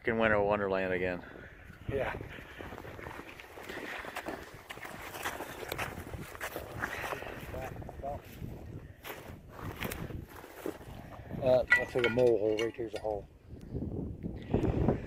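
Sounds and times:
scraping frozen soil and snow: 2.1s - 11.2s
boots shifting in snow: 3.0s - 7.3s.

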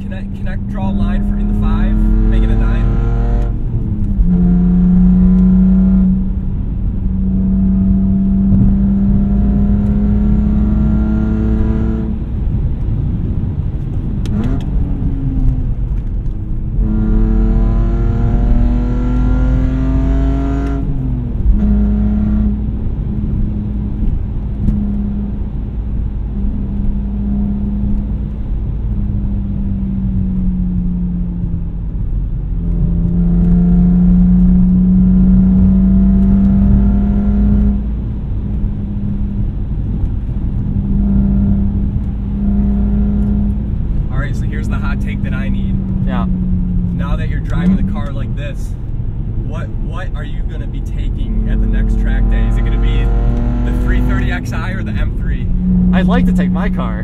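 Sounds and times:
car exhaust while driving: 0.0s - 57.0s.

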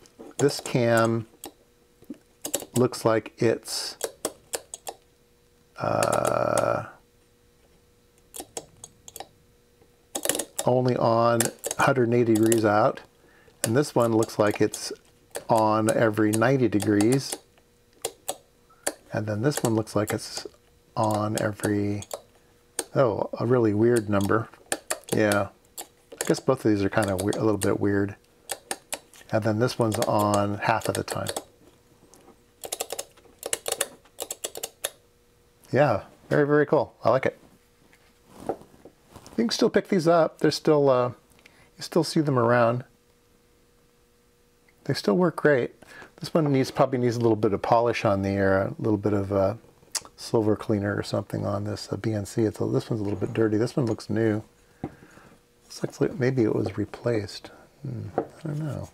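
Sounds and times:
sharp switch clicks: 3.9s - 5.0s, 27.0s - 27.8s, 28.5s - 29.1s, 29.8s - 31.5s
switch mechanism clicking: 4.0s - 5.0s, 11.4s - 12.7s, 13.6s - 23.0s, 24.0s - 27.8s, 28.5s - 31.5s.

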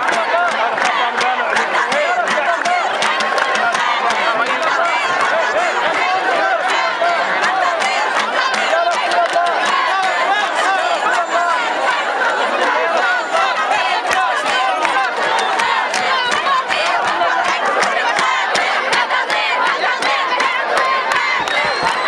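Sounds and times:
crowd of women shouting: 0.0s - 22.0s.

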